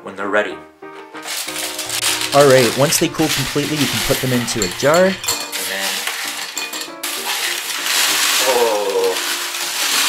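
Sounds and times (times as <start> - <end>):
corn flakes rattling into glass jar: 1.2 - 10.0.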